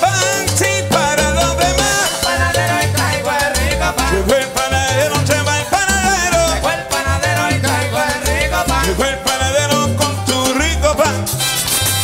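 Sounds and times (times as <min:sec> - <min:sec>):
walking bass line: 0:00.0 - 0:11.3
congas: 0:00.0 - 0:12.0
salsa band melody: 0:00.0 - 0:12.0.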